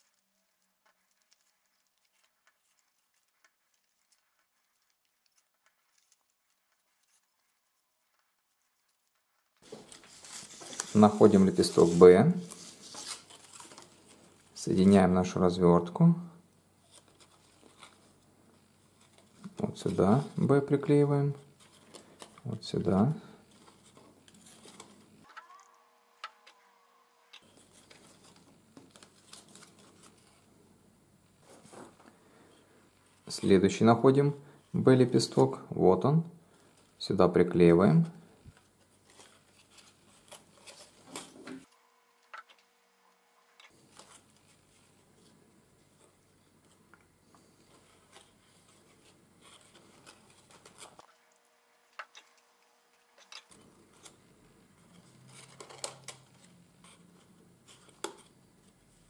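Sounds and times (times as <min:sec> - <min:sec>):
thin card rustling and tapping: 0:55.2 - 0:56.5.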